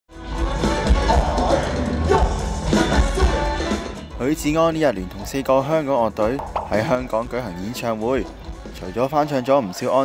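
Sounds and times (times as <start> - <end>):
live rock band: 0.1 - 4.2
man singing lead vocal: 0.4 - 4.0.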